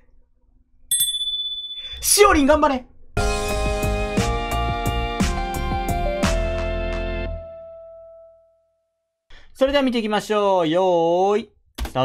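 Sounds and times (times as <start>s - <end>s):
bright bell ding: 0.9s - 2.0s.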